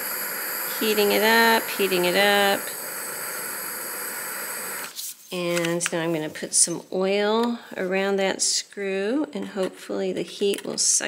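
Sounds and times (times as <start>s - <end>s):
heat tool hissing: 0.0s - 6.8s.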